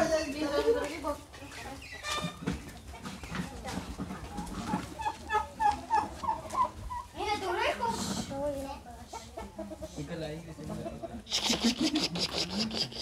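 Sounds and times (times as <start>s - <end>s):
faint background chatter: 0.0s - 13.0s
hen clucking: 1.5s - 8.3s, 8.9s - 13.0s.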